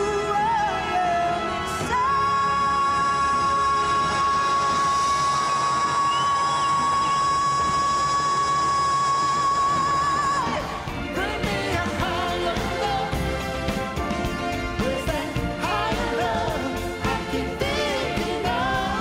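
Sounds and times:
orchestral accompaniment: 0:10.5 - 0:19.0.

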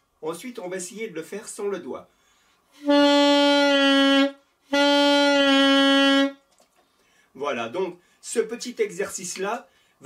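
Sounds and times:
saxophone long held notes: 0:02.8 - 0:06.4.

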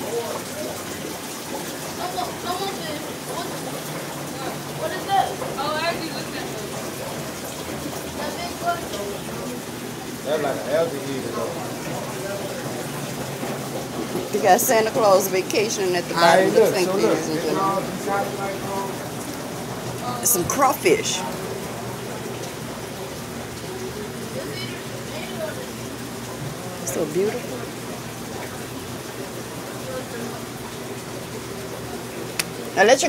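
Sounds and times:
water splashing and trickling: 0:00.0 - 0:33.0.

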